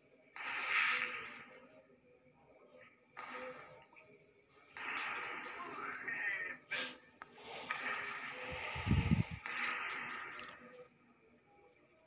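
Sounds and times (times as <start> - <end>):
person breathing heavily: 6.7 - 10.8.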